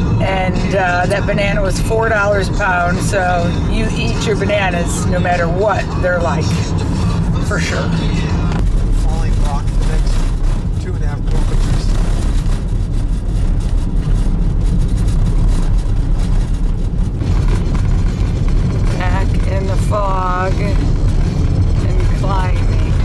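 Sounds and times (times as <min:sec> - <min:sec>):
vehicle road rumble on gravel: 0:00.0 - 0:23.0
person's voice: 0:18.9 - 0:20.8, 0:21.8 - 0:23.0.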